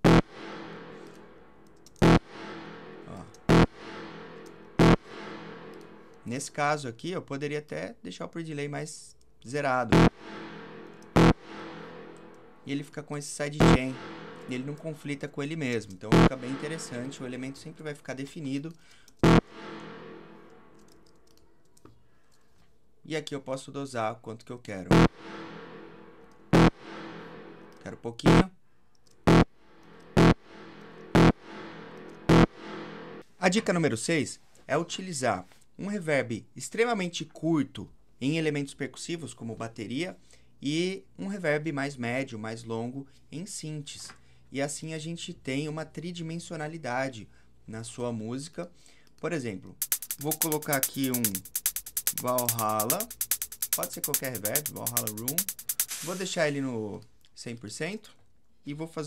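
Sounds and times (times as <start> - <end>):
synth stab with reverb tail: 0.0 - 6.4, 9.9 - 12.8, 13.6 - 15.4, 16.1 - 18.1, 19.2 - 21.1, 24.9 - 28.4, 29.3 - 33.2.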